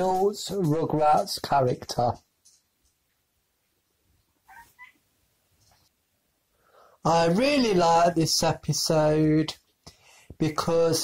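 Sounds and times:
high-pitched animal chirps: 4.5s - 5.0s.

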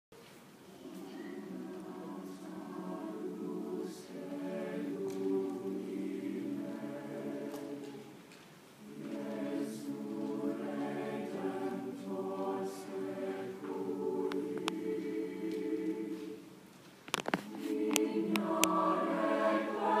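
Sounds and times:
choir singing sustained chords: 0.8s - 8.2s, 8.8s - 16.7s, 17.4s - 20.0s.

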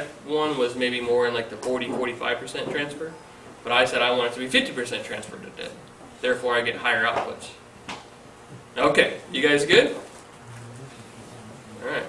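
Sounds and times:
man speaking: 10.4s - 12.0s
person humming murmur: 10.4s - 12.0s.

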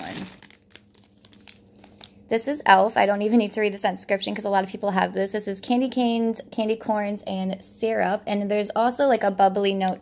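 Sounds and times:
plastic bags crinkling: 0.0s - 2.3s.

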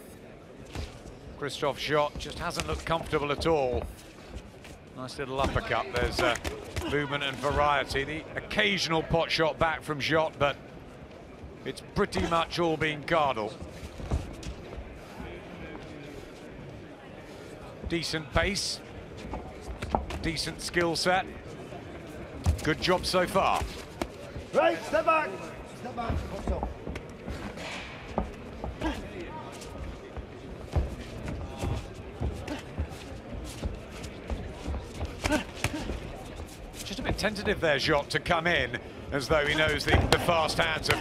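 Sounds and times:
arena crowd murmur: 0.0s - 41.0s.

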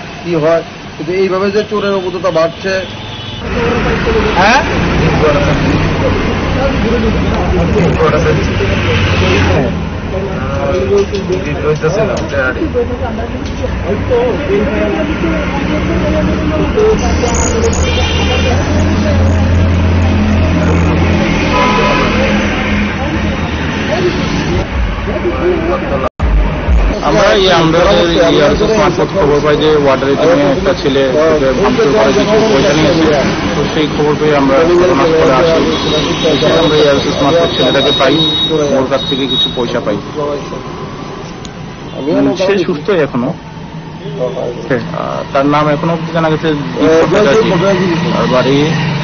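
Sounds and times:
men talking: 0.0s - 26.1s, 26.7s - 49.0s
indistinct voices: 3.4s - 49.0s.

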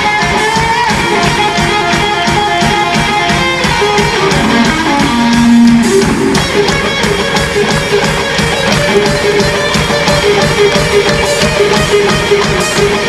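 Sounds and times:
electric guitar line: 0.0s - 13.0s
steady drum beat: 0.0s - 13.0s.

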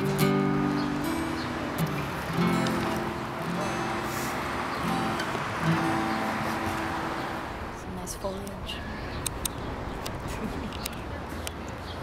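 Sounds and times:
acoustic guitar notes ringing: 0.0s - 9.3s.

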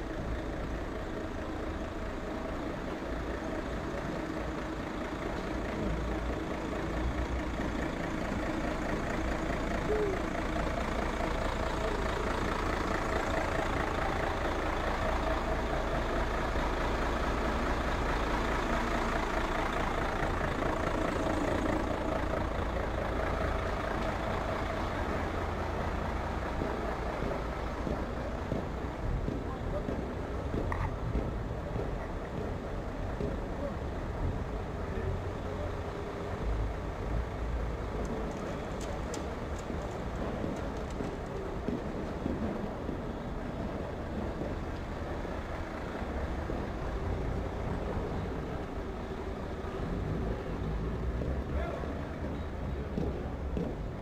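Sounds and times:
city street noise: 0.0s - 54.0s
diesel truck engine running: 0.0s - 54.0s
people talking: 9.7s - 12.1s, 22.6s - 36.6s, 46.2s - 53.8s.

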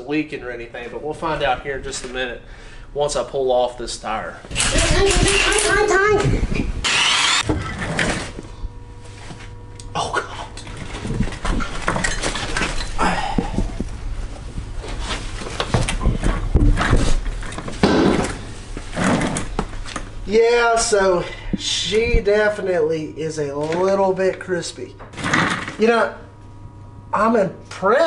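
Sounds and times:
steady low hum: 0.0s - 28.0s
bursts and clunks loosening lug nuts: 6.9s - 8.0s.

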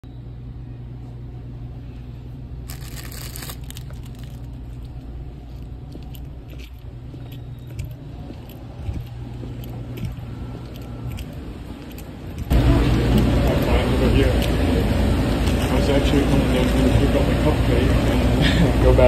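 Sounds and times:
store interior hum: 0.0s - 19.0s.

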